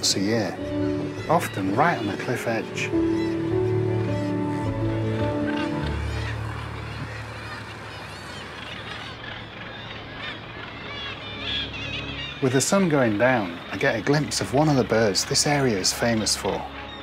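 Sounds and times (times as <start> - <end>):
seabird colony calling: 0.0 - 17.0
soft background music: 0.0 - 17.0.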